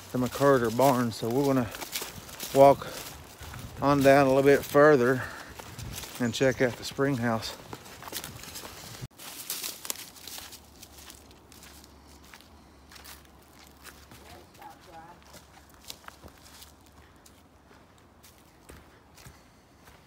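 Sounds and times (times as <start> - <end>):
footsteps in dry leaves: 0.0 - 20.0.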